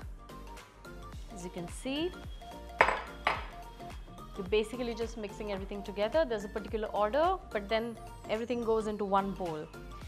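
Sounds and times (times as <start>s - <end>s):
background music: 0.0s - 10.0s
glass bowl clinking: 2.8s - 3.6s.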